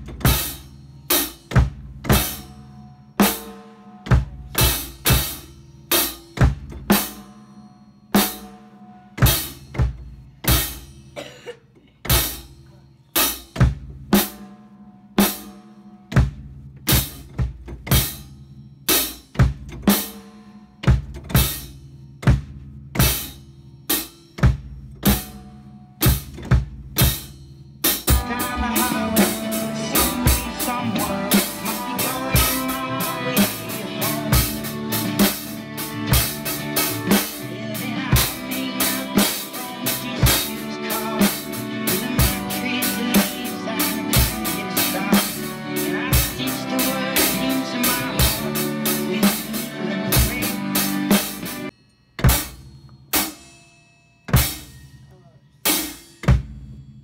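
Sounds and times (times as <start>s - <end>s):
drum kit playing: 0.0s - 11.3s, 11.9s - 57.0s
song with guitar: 28.1s - 51.7s.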